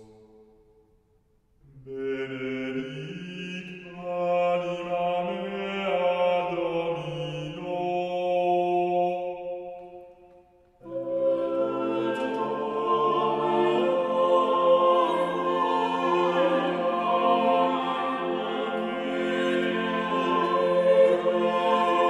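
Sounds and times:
voices singing chant: 1.9 - 10.1, 10.8 - 22.0.

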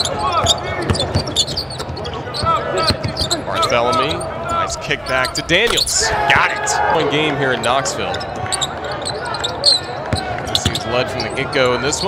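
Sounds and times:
sneakers squeaking on floor: 0.0 - 6.7, 8.1 - 11.6.

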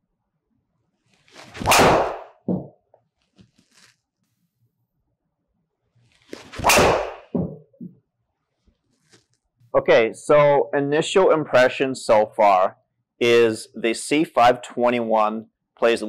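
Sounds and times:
golf club swing swish: 1.2 - 2.7, 6.3 - 7.6
driver striking golf ball: 1.6 - 2.7, 6.6 - 7.3
ball thumping simulator screen: 1.6 - 2.8, 6.5 - 8.0.

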